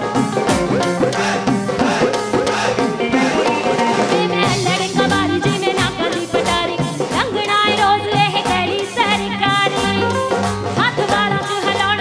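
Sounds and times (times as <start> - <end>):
folk-pop band music: 0.0 - 12.0.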